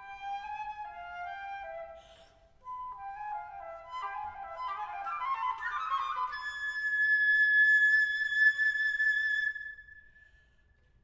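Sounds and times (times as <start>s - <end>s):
solo flute playing: 0.0s - 10.4s.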